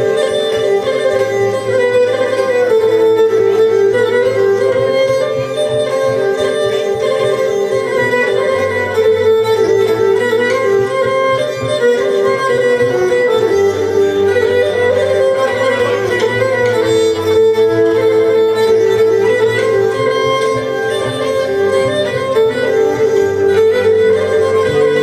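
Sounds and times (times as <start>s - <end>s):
bowed fiddle melody: 0.0s - 25.0s
guitar accompaniment: 0.0s - 25.0s.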